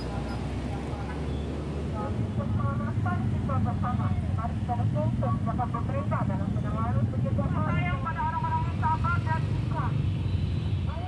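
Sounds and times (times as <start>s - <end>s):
engines idling in traffic: 0.0s - 11.0s
people talking: 1.9s - 9.9s.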